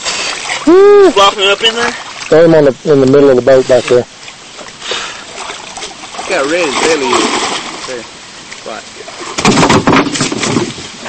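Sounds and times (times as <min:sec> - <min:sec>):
fish thrashing against metal hull: 0:09.2 - 0:11.0.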